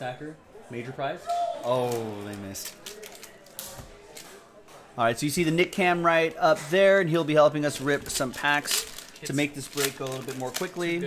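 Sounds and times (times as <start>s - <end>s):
faint background speech: 0.0s - 11.0s.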